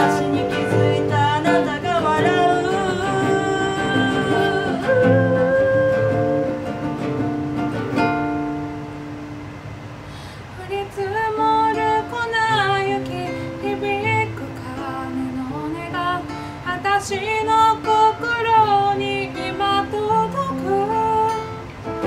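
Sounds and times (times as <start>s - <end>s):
woman singing: 0.0s - 7.3s, 10.4s - 21.7s
acoustic guitar: 0.0s - 22.0s.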